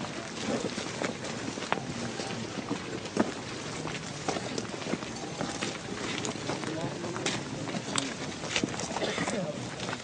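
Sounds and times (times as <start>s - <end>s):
large crowd on foot: 0.0s - 10.0s.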